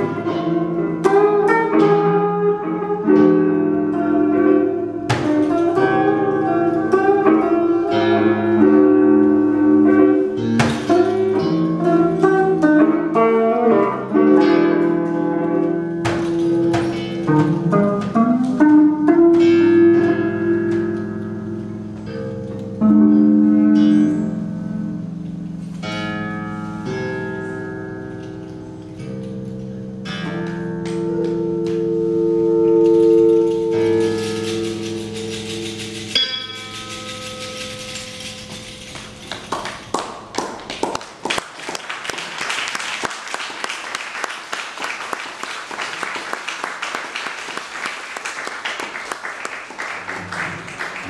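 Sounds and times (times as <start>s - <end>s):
scattered clapping: 38.8s - 51.0s.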